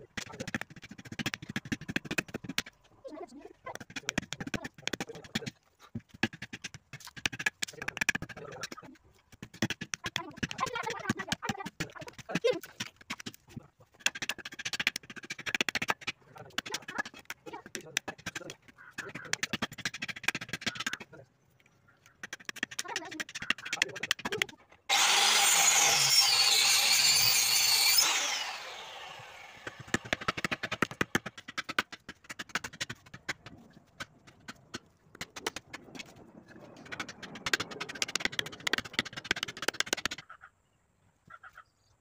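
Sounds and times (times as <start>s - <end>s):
electric power tool running: 24.9s - 30.9s
blade chopping into wooden log: 27.2s - 34.6s.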